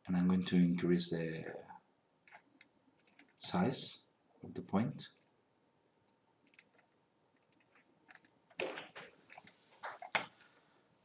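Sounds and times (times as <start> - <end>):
computer mouse clicks: 2.2 - 3.4, 6.4 - 10.3.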